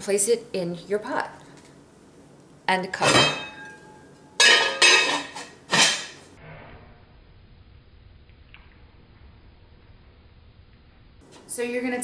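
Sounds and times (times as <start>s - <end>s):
pot and lid clanking: 3.0s - 6.3s.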